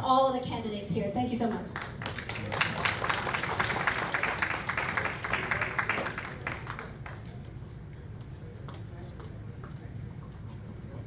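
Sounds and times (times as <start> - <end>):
audience applauding: 1.8 - 7.5.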